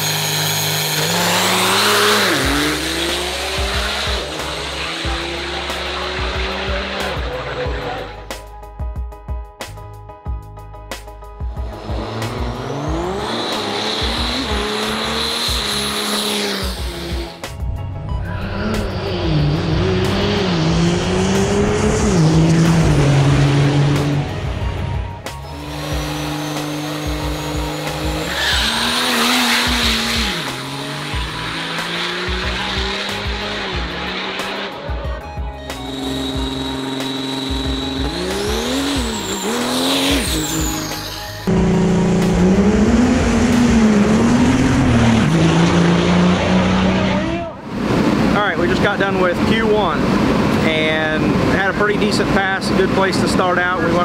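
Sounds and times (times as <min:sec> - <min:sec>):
diesel truck engines revving: 0:00.0 - 0:08.5, 0:11.4 - 0:54.0
high whistle: 0:35.7 - 0:41.4.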